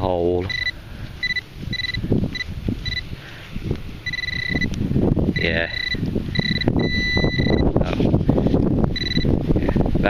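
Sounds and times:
metal detector beeps: 0.4s - 3.1s, 4.0s - 4.7s, 5.4s - 7.7s, 8.9s - 9.3s.

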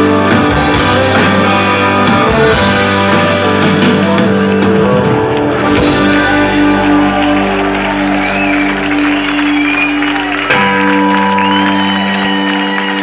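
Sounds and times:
electric guitar sustained chords: 0.0s - 13.0s
live rock band: 0.0s - 13.0s
crowd cheering and applauding: 0.4s - 13.0s.

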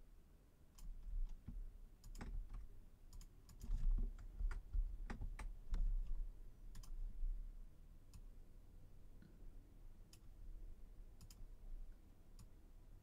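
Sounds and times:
keyboard keys tapping: 0.8s - 7.0s.

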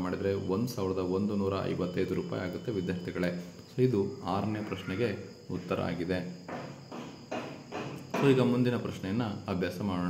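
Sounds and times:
man speaking: 0.0s - 6.4s, 8.2s - 10.0s
faint high-pitched chirring: 0.0s - 10.0s.

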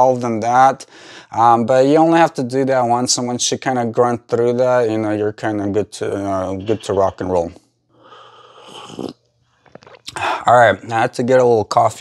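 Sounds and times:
man slurping coffee: 8.5s - 10.2s.

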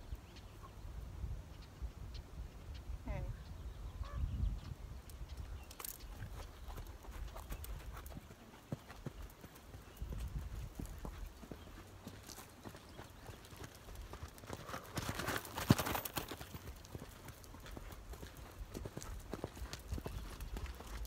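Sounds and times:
horse hoofbeats: 6.3s - 21.0s.

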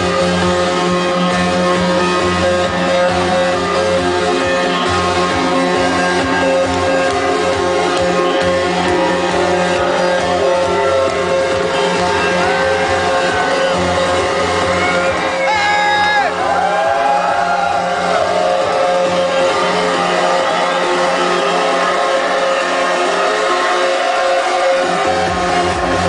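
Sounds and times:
electronic dance music: 0.0s - 26.0s.

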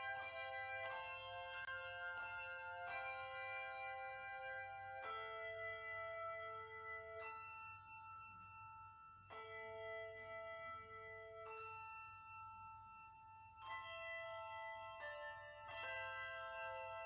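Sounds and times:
handbell choir ringing chords: 0.0s - 17.0s.

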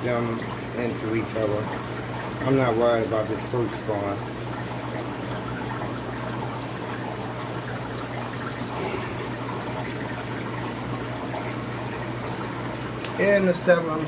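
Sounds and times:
aquarium air bubbling: 0.0s - 14.0s
low steady hum: 0.0s - 14.0s.

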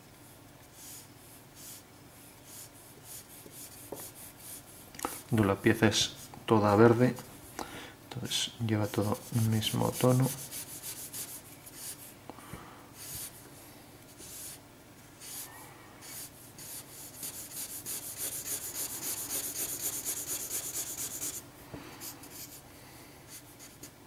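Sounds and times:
felt-tip marker scratching on paper: 15.2s - 21.4s.

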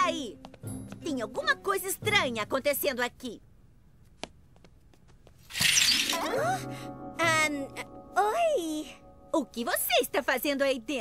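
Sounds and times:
curtain swish: 5.5s - 6.3s.

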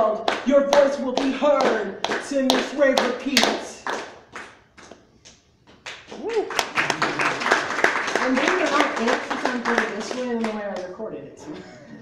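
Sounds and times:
scattered handclaps: 0.2s - 5.0s, 5.7s - 10.9s.

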